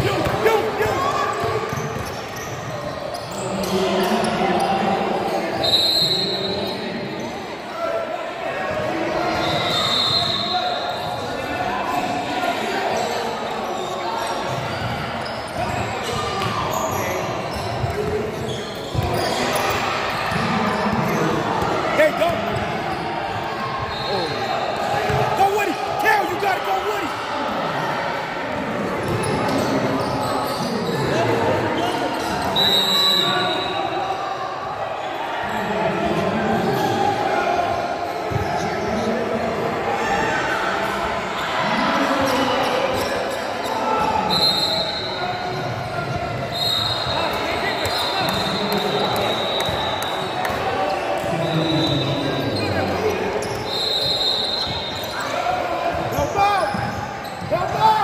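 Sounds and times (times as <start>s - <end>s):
high shoe squeaks: 9.3s - 11.1s, 12.9s - 20.4s, 46.4s - 58.0s.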